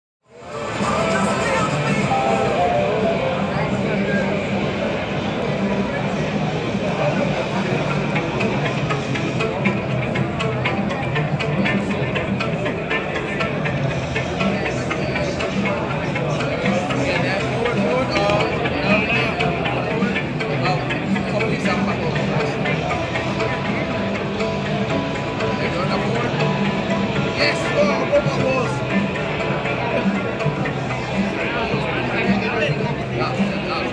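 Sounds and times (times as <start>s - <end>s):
background music with a beat: 0.3s - 5.6s, 6.6s - 33.9s
people talking: 0.4s - 33.9s.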